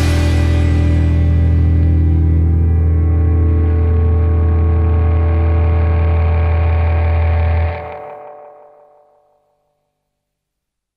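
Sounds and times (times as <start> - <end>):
sustained low bass note: 0.0 - 7.9
guitar chord ringing: 0.0 - 9.7.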